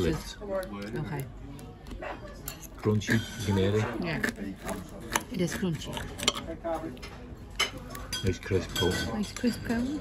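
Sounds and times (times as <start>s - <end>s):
knife and fork cutting potato: 0.0s - 10.0s
cutlery clicking on plate: 5.9s - 10.0s.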